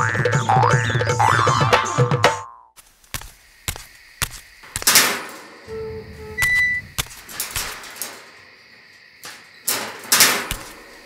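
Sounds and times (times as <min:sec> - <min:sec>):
metal gate knocks and scrapes: 0:04.8 - 0:08.6, 0:09.2 - 0:11.0.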